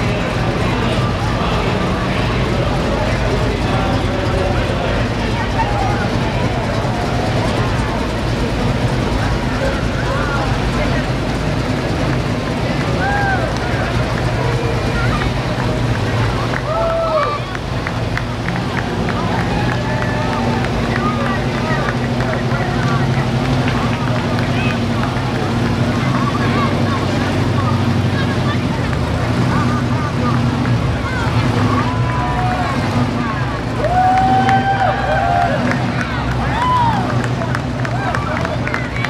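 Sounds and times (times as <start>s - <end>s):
car engines running at low speed: 0.0s - 39.0s
crowd chatter: 0.0s - 39.0s.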